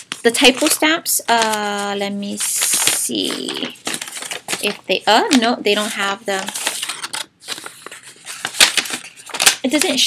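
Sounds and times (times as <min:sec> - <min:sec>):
small items crinkling and clicking: 0:00.1 - 0:10.0.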